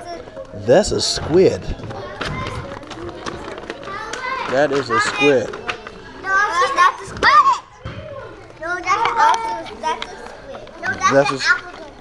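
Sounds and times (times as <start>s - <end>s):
young children talking and calling: 0.0s - 12.0s.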